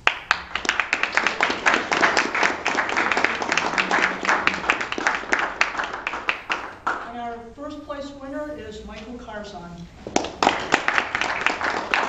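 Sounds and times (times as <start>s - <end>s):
audience applauding: 0.0s - 7.1s, 10.0s - 12.0s.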